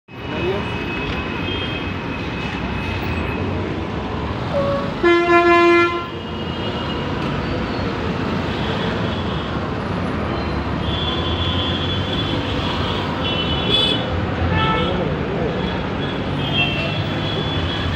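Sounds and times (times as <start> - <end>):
city road traffic: 0.1 - 17.9
loud vehicle horn blast: 4.6 - 6.2.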